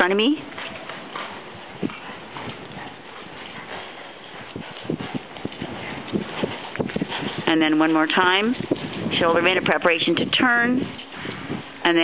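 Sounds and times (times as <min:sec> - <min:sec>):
horse hooves trotting on dirt: 0:00.0 - 0:12.0.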